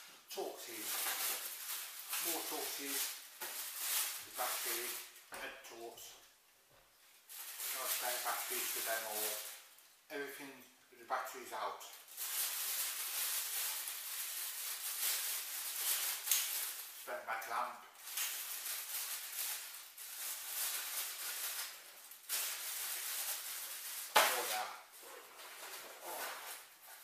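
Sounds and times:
plastic bag crinkling: 0:00.4 - 0:05.3, 0:07.2 - 0:09.8, 0:11.9 - 0:27.0.

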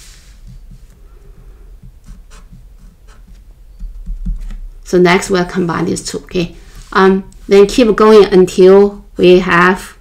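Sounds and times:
pen writing on paper: 0:00.4 - 0:03.4.

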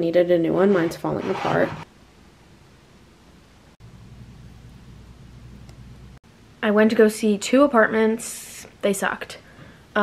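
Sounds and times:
low steady hum: 0:00.0 - 0:08.1.

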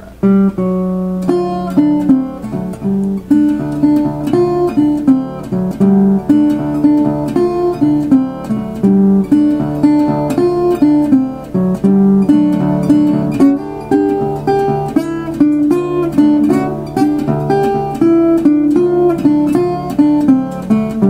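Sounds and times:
fingerpicked resonator guitar blues: 0:00.0 - 0:21.0.

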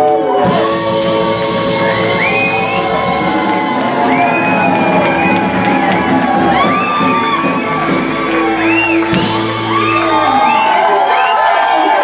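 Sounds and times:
person singing: 0:00.0 - 0:06.9
crowd whooping and shouting: 0:00.0 - 0:12.0
live band playing loudly: 0:00.0 - 0:12.0.

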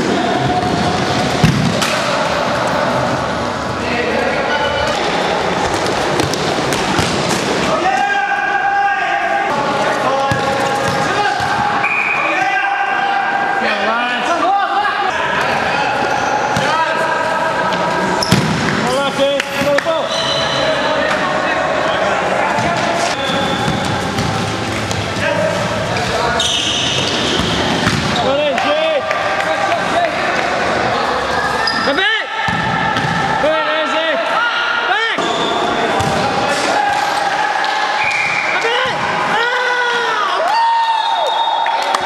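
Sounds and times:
ball thudding on court floor: 0:18.2 - 0:18.8, 0:27.4 - 0:28.2.

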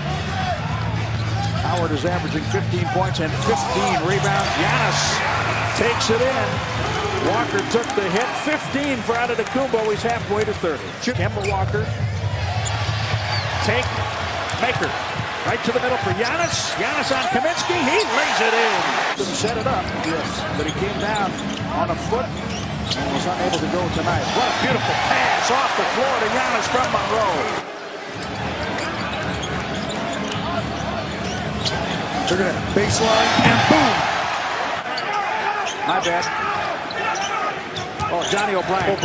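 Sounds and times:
crowd noise: 0:00.0 - 0:39.0.

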